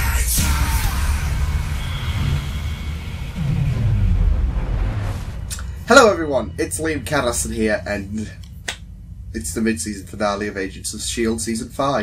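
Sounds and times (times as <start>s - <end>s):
downward bass sweep: 0.0s - 7.9s
deep rumbling sound effect: 0.2s - 8.0s.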